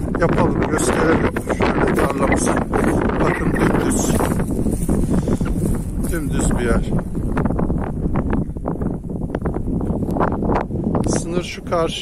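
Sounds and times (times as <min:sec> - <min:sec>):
footsteps crackling on dry stubble: 0:00.0 - 0:11.1
wind buffeting microphone: 0:00.0 - 0:12.0.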